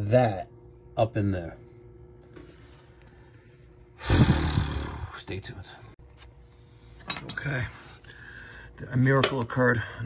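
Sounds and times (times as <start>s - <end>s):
man growling: 4.0s - 5.2s.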